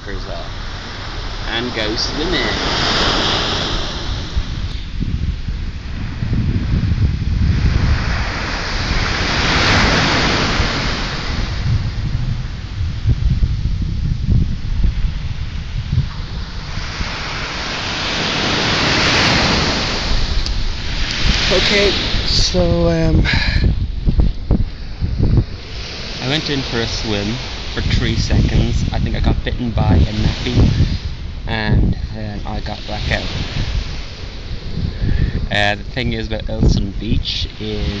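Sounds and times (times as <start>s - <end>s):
waves washing up sandy beach: 0.0s - 38.0s
wind rumbling on microphone: 0.0s - 38.0s.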